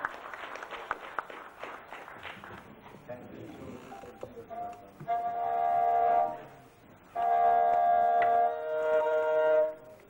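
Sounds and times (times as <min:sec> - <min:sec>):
bowed string instrument notes: 0:04.5 - 0:10.0.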